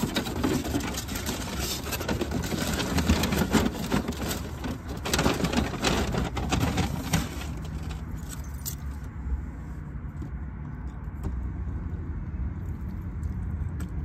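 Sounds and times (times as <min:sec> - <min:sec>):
things rustling and scraping: 0:00.0 - 0:09.2.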